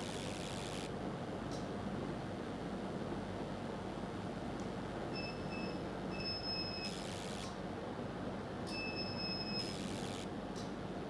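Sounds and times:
machine low hum: 0.0 - 7.8, 8.4 - 11.0
high electronic beep: 8.8 - 10.2.

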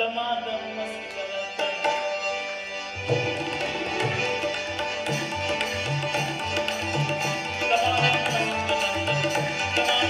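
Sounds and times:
harmonium chords and melody: 0.0 - 10.0.

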